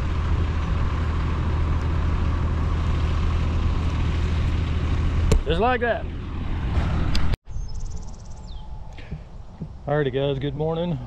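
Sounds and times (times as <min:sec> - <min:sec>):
diesel engine running: 0:00.0 - 0:07.4.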